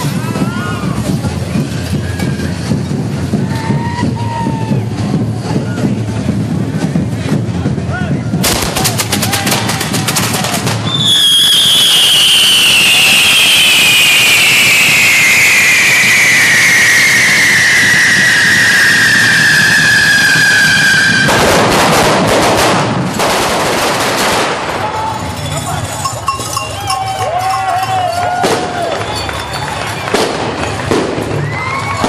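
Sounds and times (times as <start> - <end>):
fireworks crackling bangs: 0.0 - 32.0
falling firework whistle: 10.8 - 21.7, 26.6 - 32.0.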